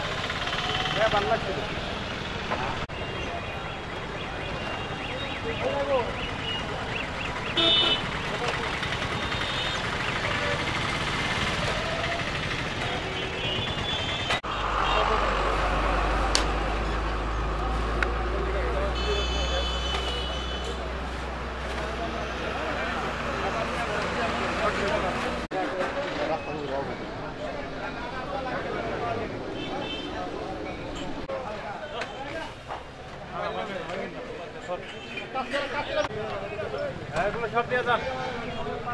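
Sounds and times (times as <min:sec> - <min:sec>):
crowd talking: 0:00.0 - 0:38.9
traffic: 0:00.0 - 0:38.9
vehicle horn toot: 0:07.6 - 0:08.1, 0:09.0 - 0:09.9, 0:12.9 - 0:15.2, 0:19.0 - 0:20.8.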